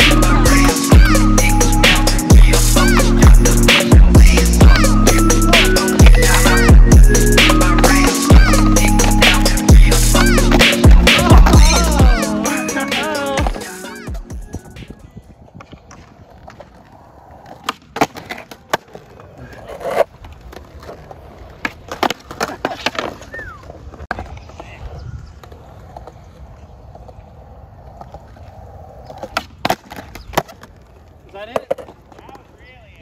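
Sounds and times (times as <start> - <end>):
voices: 0.0 - 15.4
skateboard wheels rolling on concrete: 0.0 - 33.0
skateboard clacking on ground: 10.2 - 33.0.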